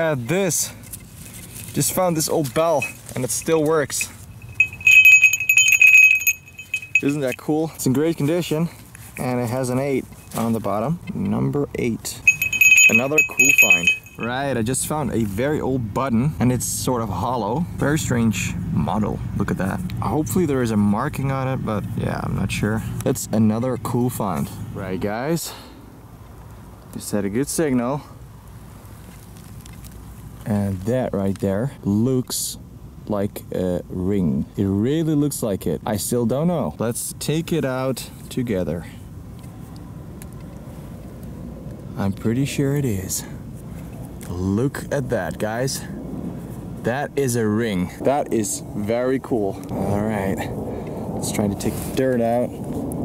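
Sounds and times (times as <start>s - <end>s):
rustling leaf litter and soil: 0.0s - 4.4s, 28.6s - 31.4s
sleigh bell jingling: 2.6s - 7.5s, 12.2s - 14.4s.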